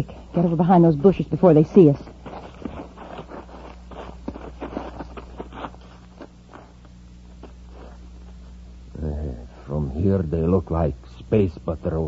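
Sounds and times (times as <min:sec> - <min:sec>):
hurried footsteps: 0:00.0 - 0:08.6
steady low hum: 0:00.0 - 0:12.0
rustling: 0:01.9 - 0:08.6.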